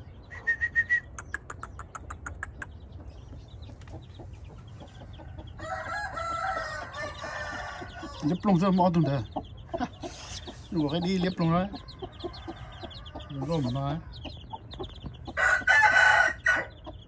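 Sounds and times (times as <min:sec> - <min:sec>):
chickens clucking: 0:00.0 - 0:17.0
rooster crowing: 0:05.5 - 0:08.4, 0:15.4 - 0:16.8.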